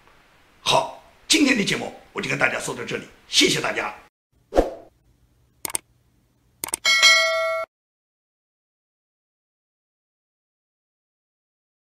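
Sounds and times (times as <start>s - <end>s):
short sharp clicks: 5.6s - 5.8s, 6.6s - 6.8s
bright ding: 6.8s - 7.7s.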